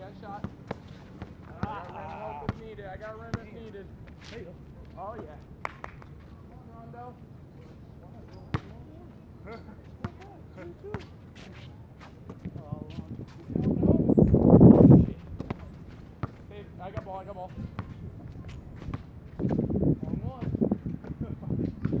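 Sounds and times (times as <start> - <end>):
players' voices: 1.4 - 5.5, 6.2 - 18.9
basketball bouncing on asphalt: 3.3 - 3.6, 15.3 - 19.7.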